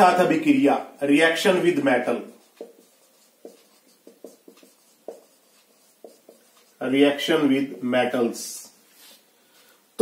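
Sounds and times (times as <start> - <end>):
marker writing on whiteboard: 1.2 - 8.3.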